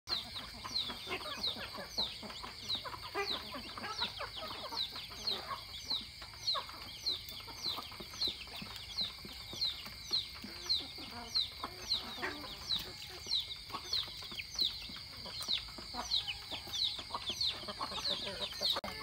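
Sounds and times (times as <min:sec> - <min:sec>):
chickens clucking: 0:00.1 - 0:19.0.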